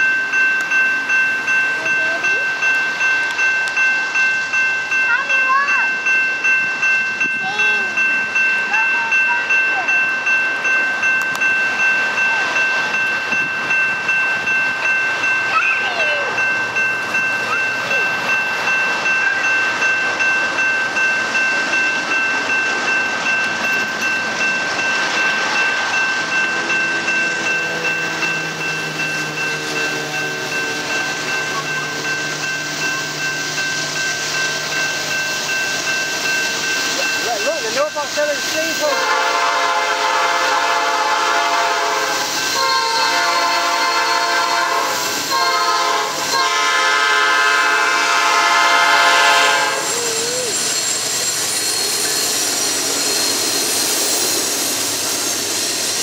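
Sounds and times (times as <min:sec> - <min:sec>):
diesel locomotive engines rumbling: 0:00.0 - 0:56.0.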